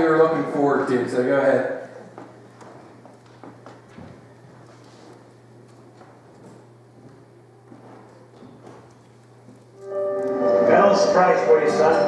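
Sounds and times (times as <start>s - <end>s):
faint room hum: 0.0s - 12.0s
film music with long held notes: 9.8s - 12.0s.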